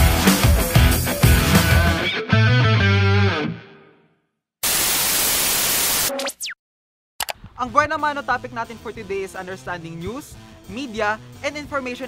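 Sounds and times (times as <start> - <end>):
static hiss: 4.6 - 6.1
electronic glitch with pitch sweeps: 4.6 - 6.6.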